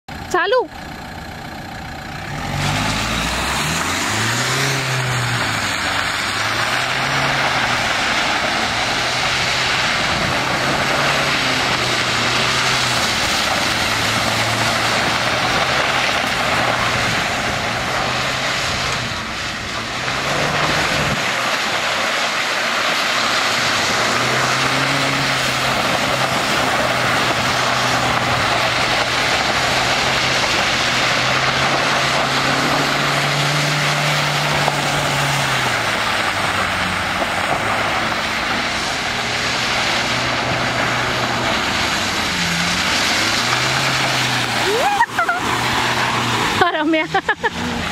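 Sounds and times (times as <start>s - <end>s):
car engine revving: 0.0s - 47.9s.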